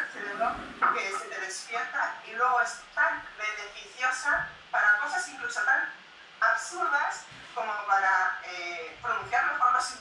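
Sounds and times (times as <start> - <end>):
woman speaking through laptop speaker: 0.0 - 10.0.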